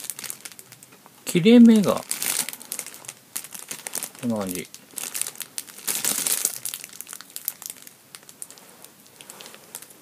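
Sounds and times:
plastic wrapper crinkling: 0.0s - 10.0s.

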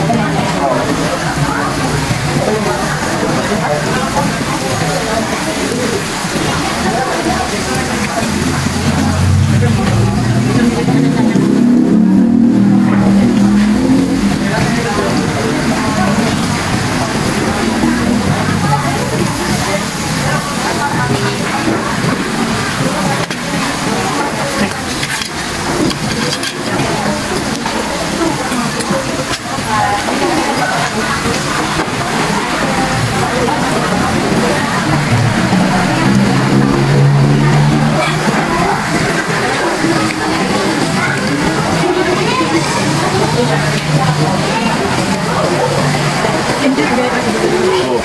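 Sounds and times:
restaurant chatter: 0.0s - 48.0s
low droning sound: 7.4s - 20.6s, 33.3s - 39.1s.

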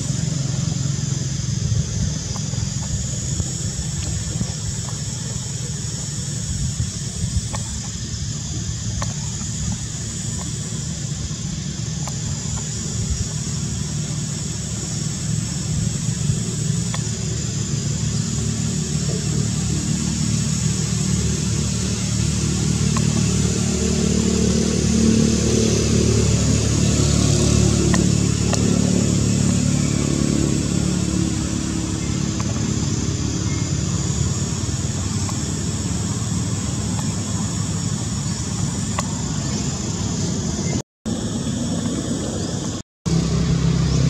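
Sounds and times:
low motor engine running: 0.0s - 44.0s.

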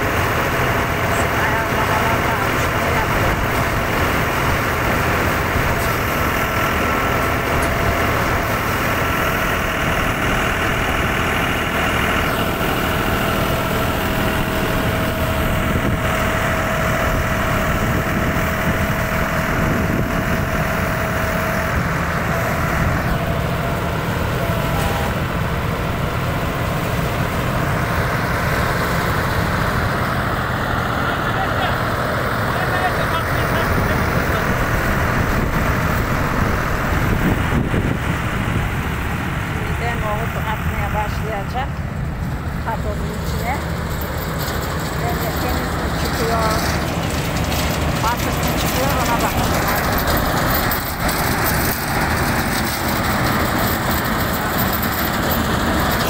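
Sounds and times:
steady mechanical whine: 0.0s - 56.0s
tractor engine drone: 0.0s - 56.0s
thresher spinning: 42.4s - 56.0s.

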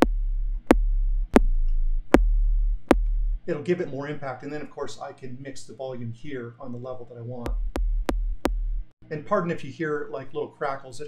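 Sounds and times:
deep sub-bass synth notes: 0.0s - 3.5s, 7.4s - 8.9s.

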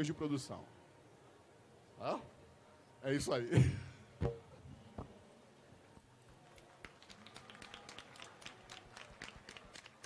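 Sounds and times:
small audience clapping: 6.3s - 10.0s.

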